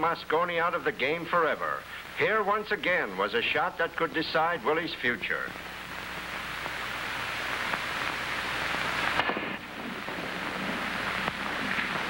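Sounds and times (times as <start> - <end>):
old film soundtrack hiss: 0.0 - 12.0.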